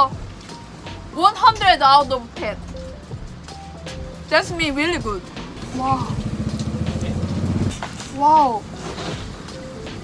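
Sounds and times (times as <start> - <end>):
motorcycle engine idling: 4.6 - 7.9.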